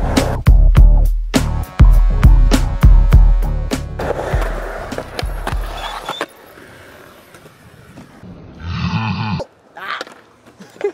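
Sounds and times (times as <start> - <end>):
music: 0.0 - 6.0
skateboard wheels rolling on concrete: 3.7 - 8.8, 9.4 - 10.9
skateboard clacks: 4.0 - 8.2.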